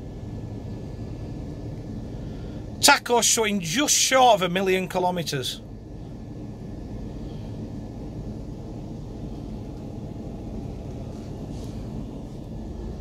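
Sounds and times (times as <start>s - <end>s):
diesel engine idling: 0.0s - 13.0s.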